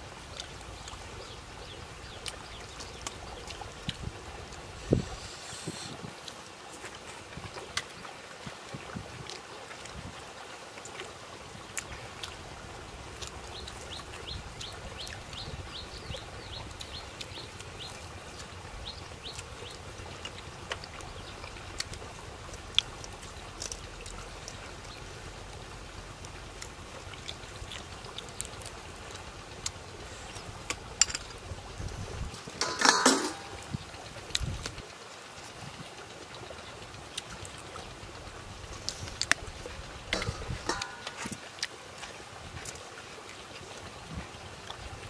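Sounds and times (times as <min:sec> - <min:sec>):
chewing and lip smacks: 0:19.2 - 0:25.0, 0:26.2 - 0:30.8.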